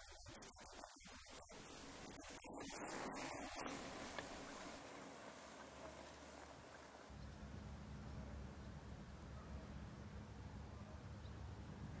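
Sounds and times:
faint ticks: 0:03.4 - 0:04.8.

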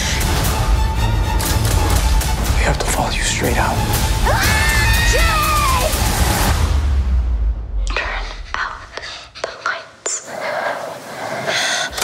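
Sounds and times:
person whispering: 0:07.8 - 0:11.9.

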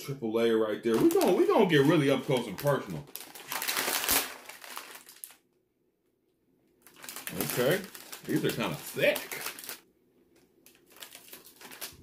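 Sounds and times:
plastic wrapper crinkling: 0:00.9 - 0:05.5, 0:06.8 - 0:12.0.

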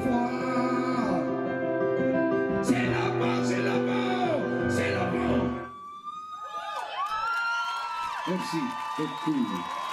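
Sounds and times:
audience cheering and whooping: 0:05.7 - 0:09.9.

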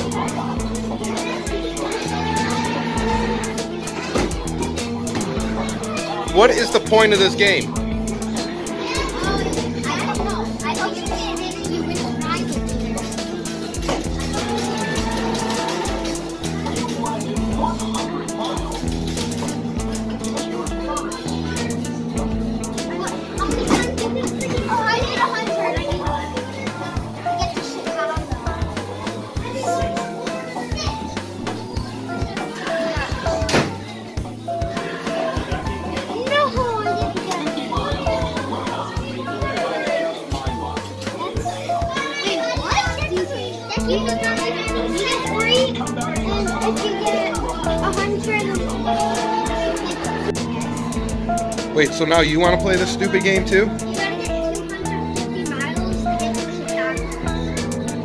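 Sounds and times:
children's voices: 0:00.0 - 0:58.0
music with a steady beat: 0:00.0 - 0:58.0.

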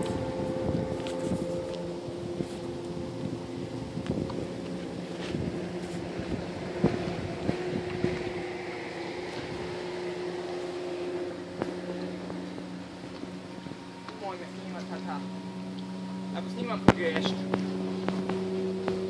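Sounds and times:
distant motorboat engine: 0:00.0 - 0:19.0.

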